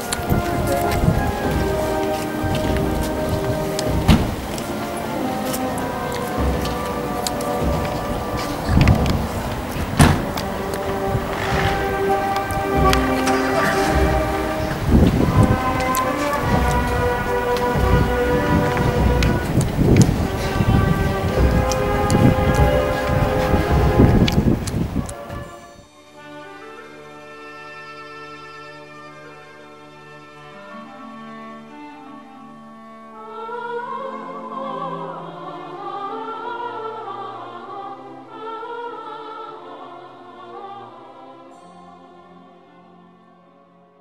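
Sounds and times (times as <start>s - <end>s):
crackling rumble on microphone: 0.0s - 25.6s
brass band playing held notes: 0.0s - 33.4s.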